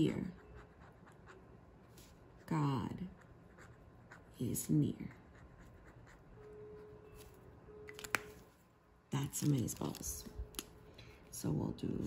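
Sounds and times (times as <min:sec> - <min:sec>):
brush pen writing on paper: 0:00.0 - 0:01.5, 0:02.4 - 0:06.6.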